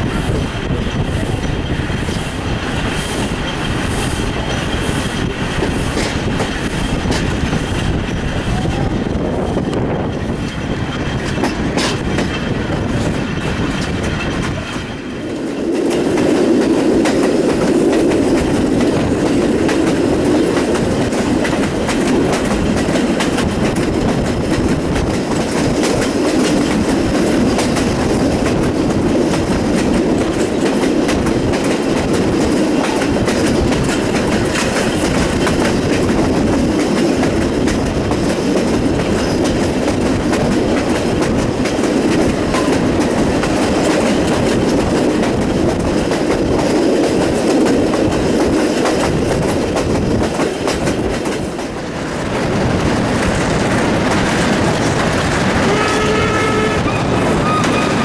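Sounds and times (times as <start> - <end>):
train wheels rolling on rails: 0.0 - 58.0
wind rushing past window: 0.0 - 58.0.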